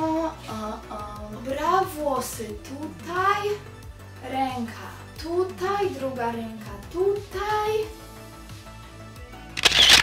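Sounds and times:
soft background music: 0.0s - 10.0s
camera shutter sound effect: 9.6s - 10.0s.

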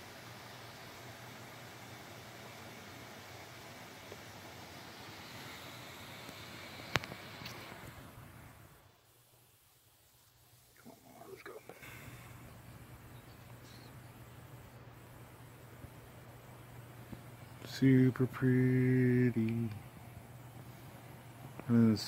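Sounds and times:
faint hiss: 0.0s - 22.0s
low hum: 0.0s - 22.0s.

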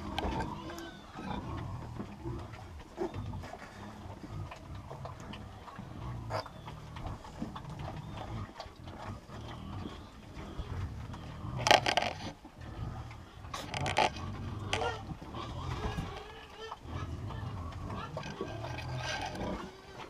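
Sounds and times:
pigs grunting: 0.0s - 20.0s.

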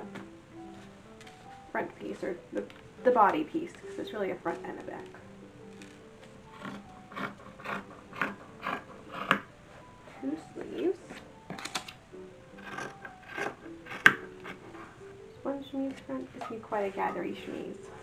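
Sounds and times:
faint music: 0.0s - 18.0s
cloth rustling: 0.6s - 7.5s.

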